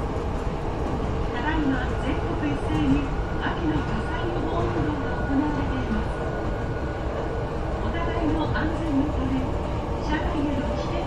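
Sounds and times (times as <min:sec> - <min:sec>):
idle train rumble and hum: 0:00.0 - 0:11.0.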